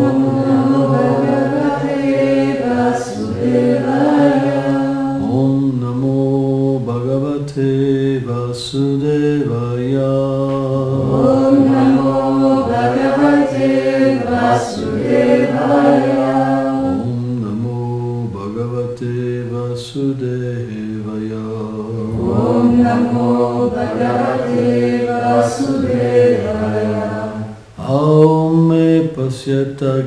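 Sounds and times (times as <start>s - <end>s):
man chanting a slow melody: 5.0s - 12.1s, 16.8s - 22.7s, 27.7s - 30.0s.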